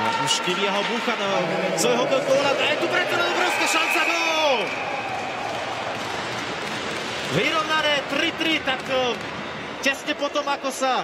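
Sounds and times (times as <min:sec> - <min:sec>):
crowd noise: 0:00.0 - 0:11.0
crowd applause: 0:01.5 - 0:08.6.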